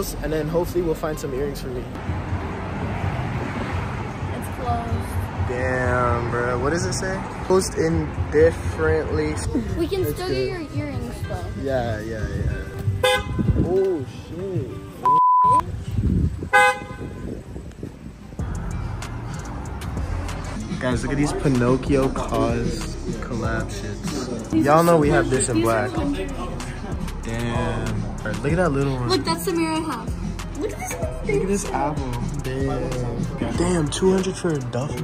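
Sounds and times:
wind buffeting microphone: 0:11.9 - 0:14.7, 0:15.6 - 0:18.8.

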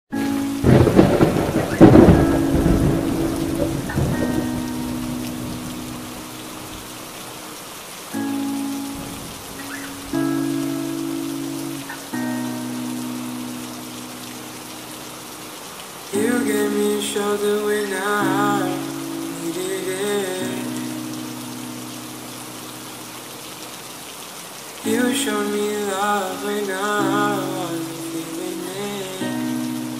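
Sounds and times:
steady rain: 0:00.1 - 0:29.9
loud thunderclap: 0:00.6 - 0:04.8.

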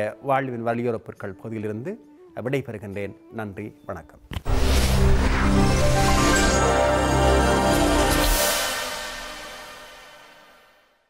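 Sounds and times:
high shimmering hit: 0:04.5 - 0:10.9.

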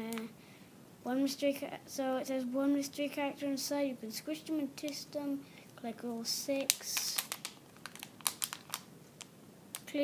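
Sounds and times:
foil packet crinkling: 0:06.5 - 0:09.9.

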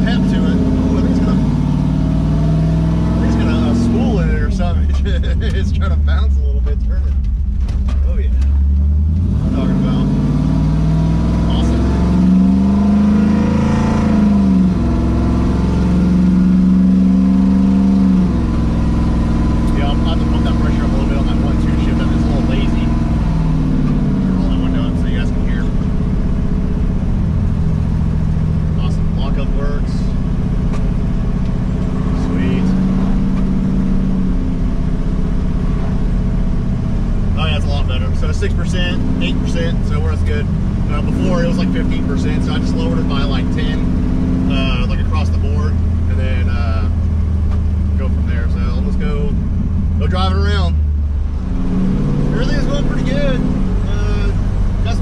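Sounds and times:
vee eight engine accelerating: 0:00.0 - 0:55.0.

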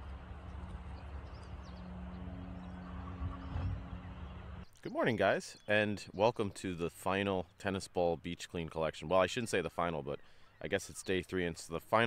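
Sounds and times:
low mechanical hum: 0:00.0 - 0:04.7
low rumble: 0:00.0 - 0:04.7.

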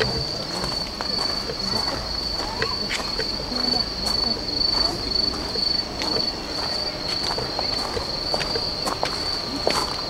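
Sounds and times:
cricket trilling: 0:00.0 - 0:10.0.

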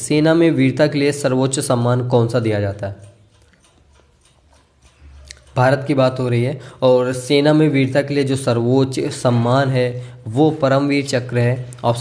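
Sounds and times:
light ticks: 0:02.5 - 0:06.6.

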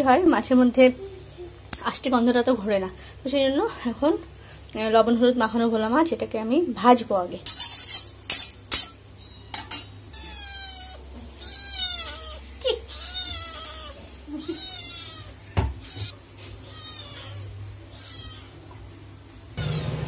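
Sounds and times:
kitten meowing: 0:09.2 - 0:18.6.

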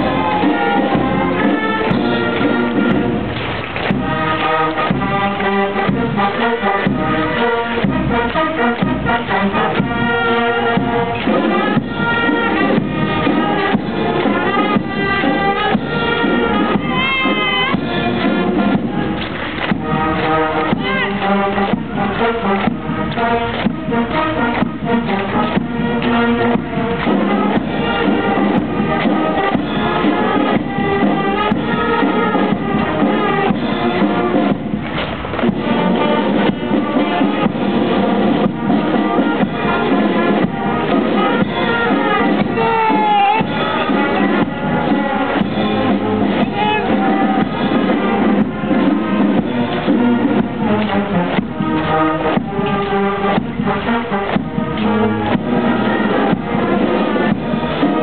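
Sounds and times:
brass band playing a march: 0:00.0 - 0:58.0
steady drum beat: 0:00.0 - 0:58.0.

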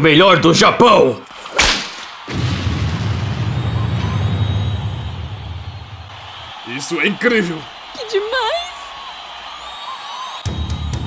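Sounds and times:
low rumbling boom: 0:02.3 - 0:06.1.

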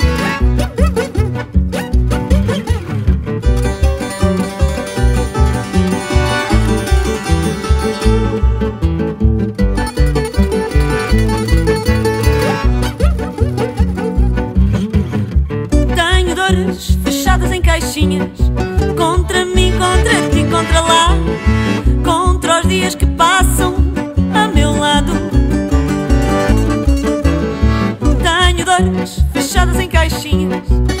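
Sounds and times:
steady bass beat: 0:00.0 - 0:16.2
plucked string music: 0:00.0 - 0:31.0.

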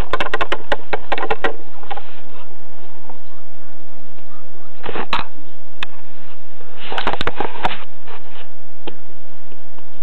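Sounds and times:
plastic toys clicking on wood: 0:00.0 - 0:01.6.

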